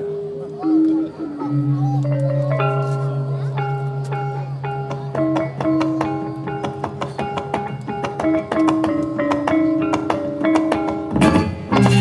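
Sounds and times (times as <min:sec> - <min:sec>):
gamelan metallophones ringing: 0:00.0 - 0:06.8.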